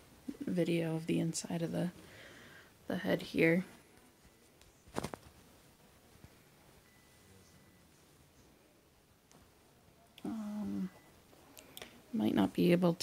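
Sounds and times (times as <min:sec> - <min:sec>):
person humming one pitch: 0:10.2 - 0:11.0.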